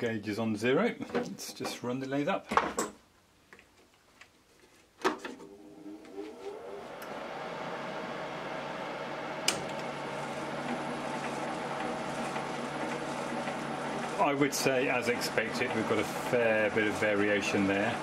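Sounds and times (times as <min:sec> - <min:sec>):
lathe motor whine: 0:05.6 - 0:18.0
lathe switch click: 0:09.4 - 0:09.9.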